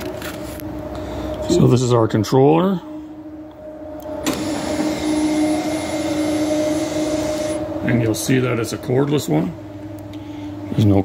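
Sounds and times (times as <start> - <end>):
electric motor whining: 3.1 - 10.0.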